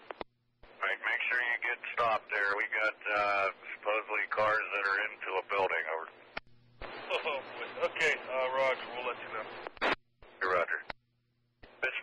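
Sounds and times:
radio voice transmission: 0.8 - 6.2, 6.8 - 10.9, 11.8 - 12.0
sharp radio clicks: 9.6 - 10.0.

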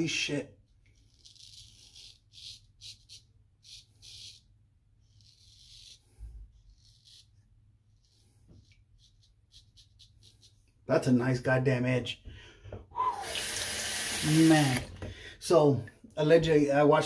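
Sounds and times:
razor scraping stubble: 0.8 - 10.7.

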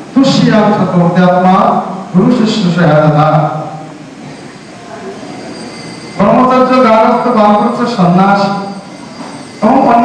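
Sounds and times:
faint high whines: 0.0 - 10.0
steady background hiss: 0.0 - 10.0
man speaking: 0.2 - 3.8, 6.2 - 8.7, 9.6 - 10.0.

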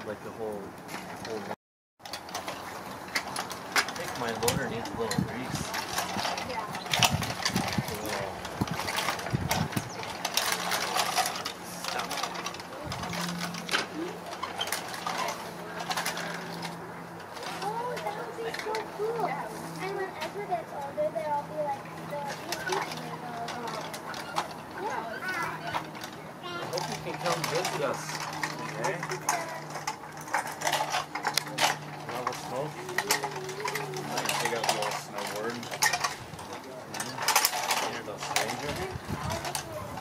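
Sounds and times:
toy trucks rattling in soil: 0.9 - 40.0
children chattering: 4.0 - 35.6, 36.6 - 40.0.

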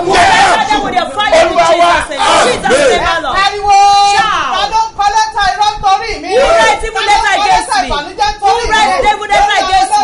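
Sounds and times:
man and woman shouting prayer: 0.0 - 10.0.

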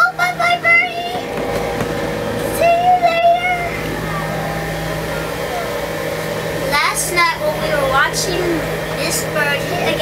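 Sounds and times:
child's high voice: 0.0 - 1.3, 2.5 - 4.3
constant low hum: 0.0 - 10.0.

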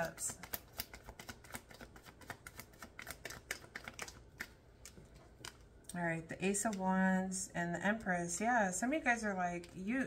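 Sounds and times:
cards being shuffled: 0.0 - 5.7.

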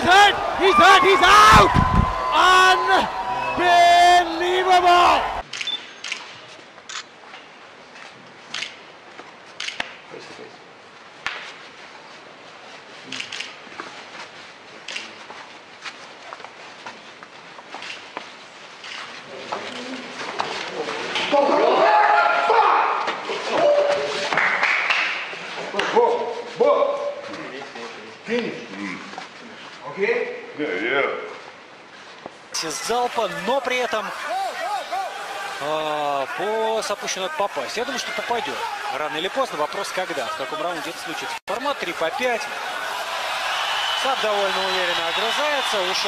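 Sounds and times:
men speaking: 0.0 - 5.4, 32.6 - 42.8, 43.8 - 46.0.

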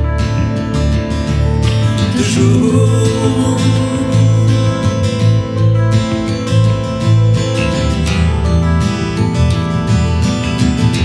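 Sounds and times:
bass guitar: 0.0 - 11.0
electric guitar: 0.0 - 11.0
strummed acoustic guitar: 0.0 - 11.0.

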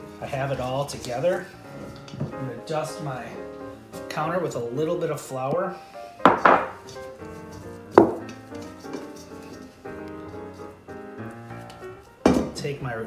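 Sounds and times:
light background music: 0.0 - 13.0.

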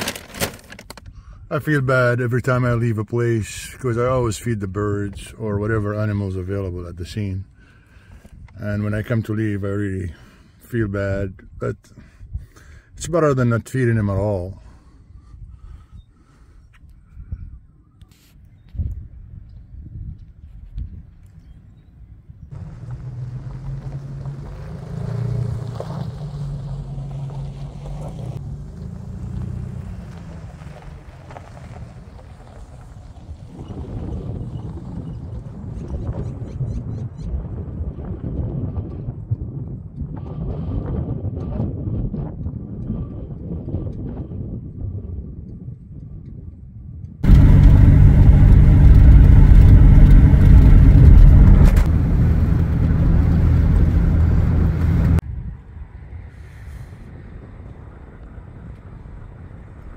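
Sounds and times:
loud driving noise: 22.5 - 32.3, 47.2 - 55.2
car engine: 22.5 - 33.5, 47.2 - 55.2
road noise: 22.5 - 35.7, 47.2 - 59.9.

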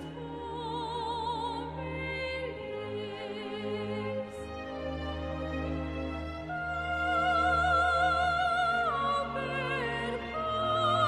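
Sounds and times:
slow orchestral music: 0.0 - 11.0.

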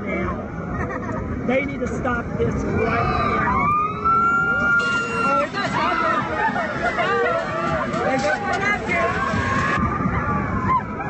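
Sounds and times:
riders screaming and shouting: 2.7 - 11.0.

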